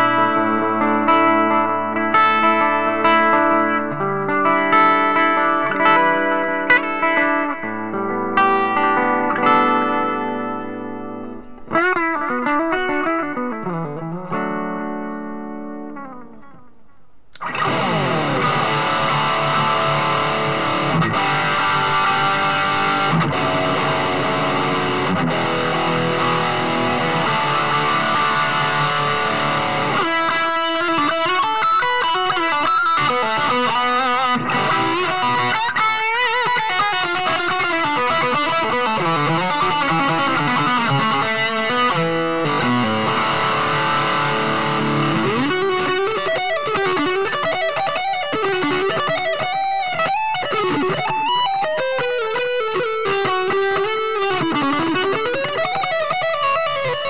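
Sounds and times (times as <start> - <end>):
electric guitar solo: 0.0 - 57.0.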